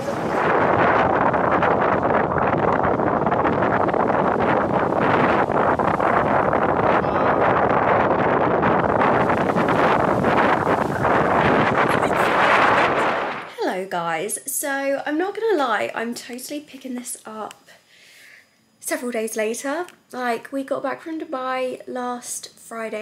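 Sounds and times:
waves breaking on shore: 0.0s - 13.6s
wind buffeting microphone: 0.0s - 13.7s.

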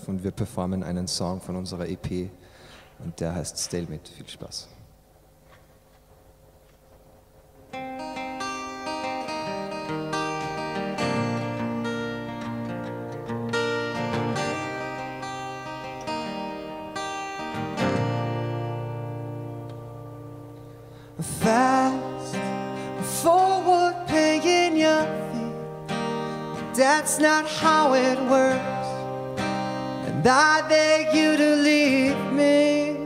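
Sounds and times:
acoustic guitar chords ringing: 7.6s - 33.0s
man singing: 21.2s - 25.8s, 26.6s - 29.2s, 30.0s - 33.0s.

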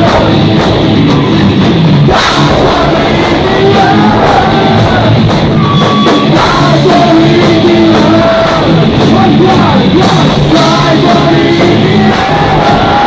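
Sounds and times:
loud hit: 0.0s - 9.3s
distorted electric guitars: 0.0s - 13.0s
drum kit: 0.0s - 13.0s
person singing: 2.1s - 5.3s, 6.2s - 13.0s.

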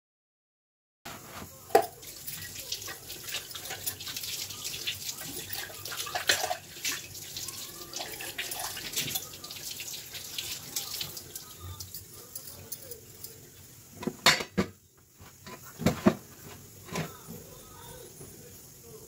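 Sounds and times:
tap water running into sink: 1.7s - 12.2s
metal bowls clinking: 1.7s - 13.4s.

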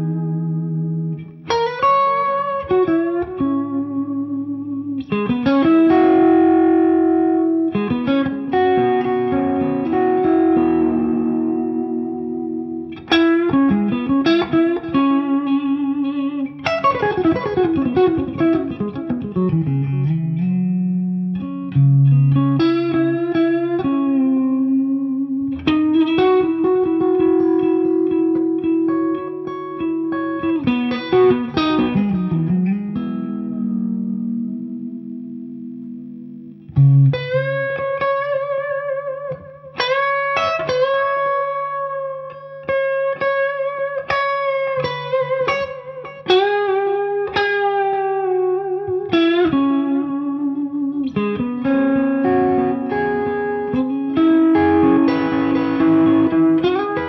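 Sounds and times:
electric guitar through amplifier: 0.0s - 57.0s.

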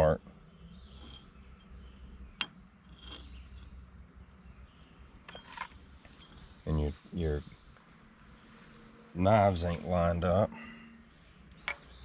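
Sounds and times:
light metal clinks and scrapes: 0.8s - 3.8s, 5.2s - 6.6s.

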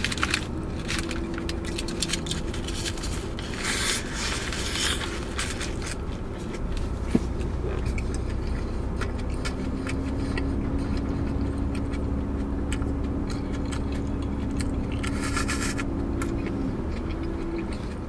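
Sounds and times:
foil crinkling: 0.0s - 8.6s
car engine hum: 0.0s - 18.0s
chewing clicks: 7.4s - 18.0s.

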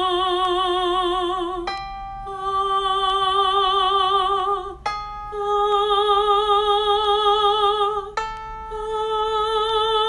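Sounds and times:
woman singing held vowel with vibrato: 0.0s - 10.0s.

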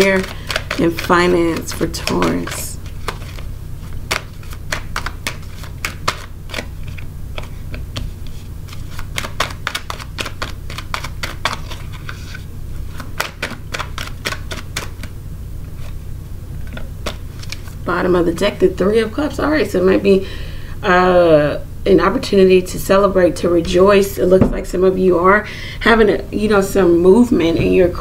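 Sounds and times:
cards shuffling and clicking: 0.0s - 15.1s, 16.6s - 17.8s.

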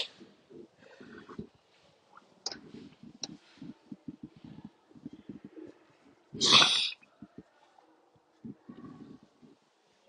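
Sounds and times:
person sneezing: 6.4s - 7.0s.

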